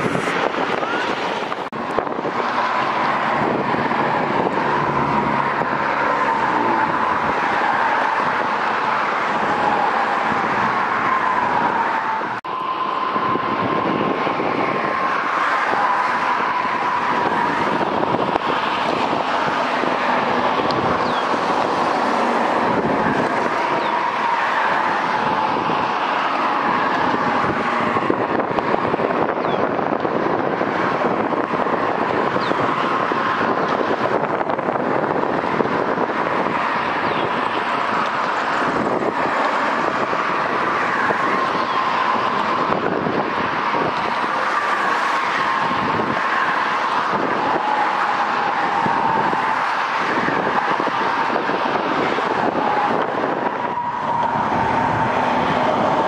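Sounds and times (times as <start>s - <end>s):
train rolling rush: 0.0s - 56.0s.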